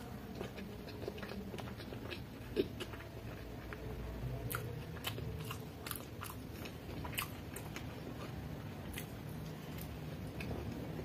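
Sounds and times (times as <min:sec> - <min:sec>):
chewing noodles: 0:00.0 - 0:11.0.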